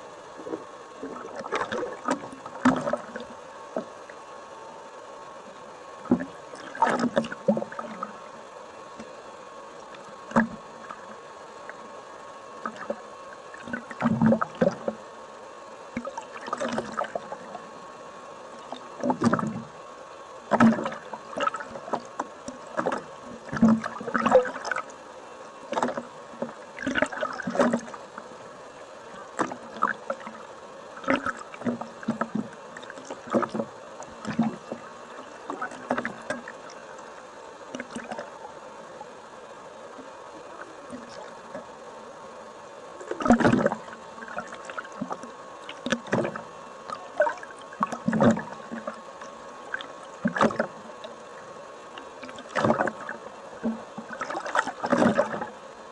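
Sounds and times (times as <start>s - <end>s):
faint steady tone: 0.0s - 55.9s
steady hiss: 0.0s - 55.9s
water sloshing and bubbling: 0.0s - 55.9s.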